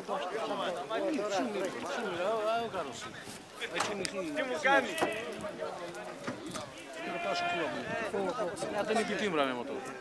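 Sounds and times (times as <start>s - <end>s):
men calling out: 6.8s - 9.3s.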